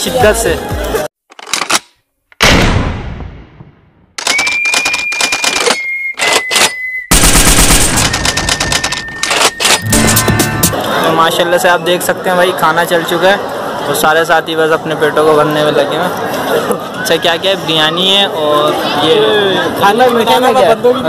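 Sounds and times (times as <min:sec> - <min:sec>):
steady high beep: 0:08.1 - 0:10.7.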